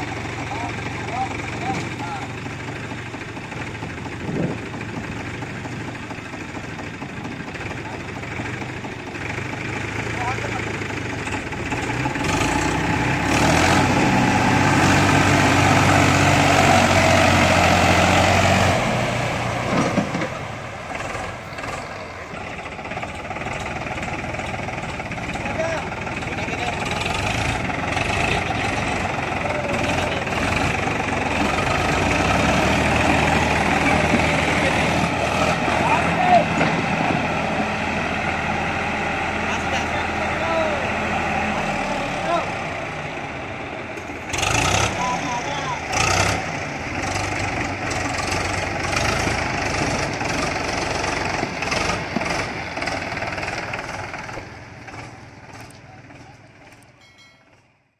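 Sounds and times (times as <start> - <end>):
tractor engines under load: 0.0 - 57.9
people's voices: 0.4 - 2.5, 25.1 - 32.0, 33.3 - 37.0, 39.3 - 43.3, 44.8 - 46.0, 55.5 - 57.2.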